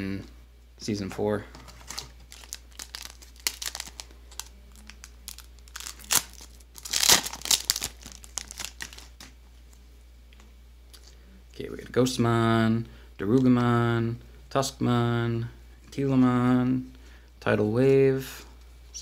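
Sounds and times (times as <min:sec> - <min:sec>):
wrapper rustling: 0:01.6 - 0:09.4
foil wrapper crinkling: 0:01.7 - 0:09.3
foil wrapper tearing: 0:01.8 - 0:09.3.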